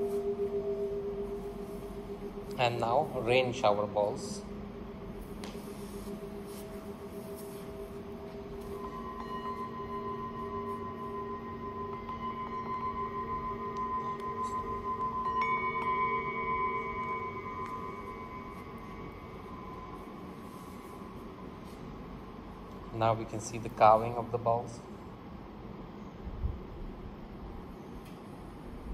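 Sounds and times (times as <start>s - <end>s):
small singing bowls struck: 0.0s - 22.0s
low hum of large bowls: 0.0s - 28.9s.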